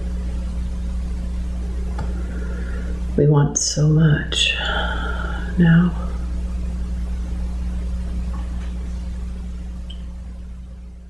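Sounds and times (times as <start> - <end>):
low hum: 0.0 - 11.0.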